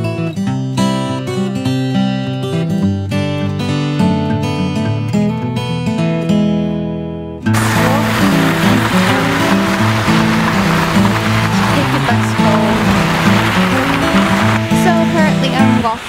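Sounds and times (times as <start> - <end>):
background music: 7.6 - 16.0
loud rushing outdoor ambience: 7.6 - 16.0.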